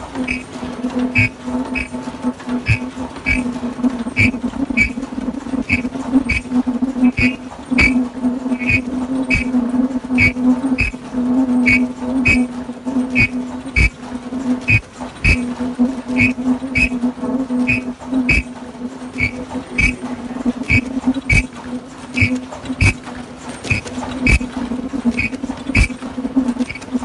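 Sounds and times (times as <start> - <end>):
machine buzzing hum: 0.0 - 27.0
mechanical clacks: 0.0 - 27.0.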